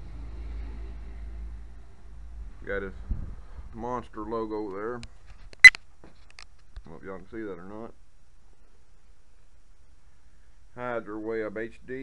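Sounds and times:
speech: 2.6 - 3.0, 3.8 - 5.1, 6.8 - 8.0, 10.8 - 12.0.

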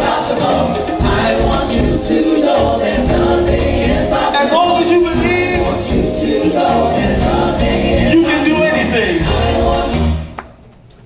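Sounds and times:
keyboard bass and drums band: 0.0 - 10.4
vocal group singing in harmony: 0.0 - 10.4.

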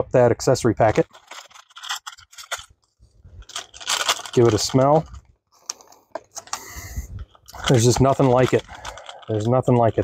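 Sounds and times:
plastic pouch crinkling and ripping: 0.9 - 10.0.

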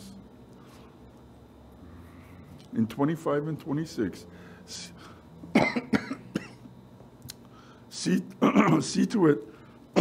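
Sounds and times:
man coughing: 5.5 - 6.7, 8.4 - 9.0.

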